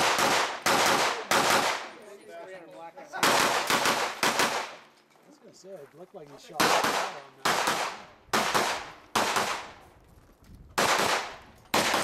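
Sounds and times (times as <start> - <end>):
rifle shots: 0.0 - 2.0, 3.2 - 4.9, 6.6 - 9.8, 10.8 - 12.0.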